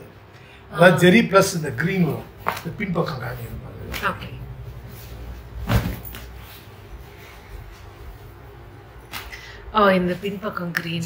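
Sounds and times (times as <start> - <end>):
fabric whoosh and thump: 5.4 - 6.2.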